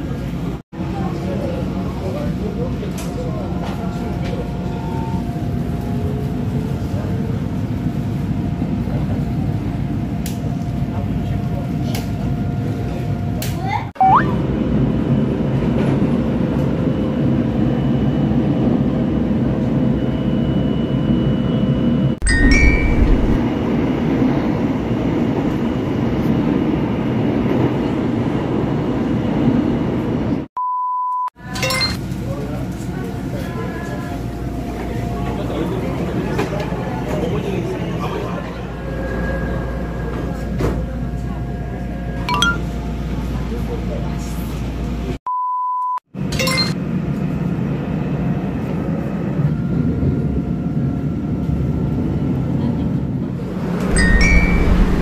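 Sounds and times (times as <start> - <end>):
short steady beep: 14.0 - 14.4, 30.6 - 32.0, 45.3 - 46.8
moving train running noise: 22.3 - 30.5, 32.1 - 42.2, 46.9 - 55.0.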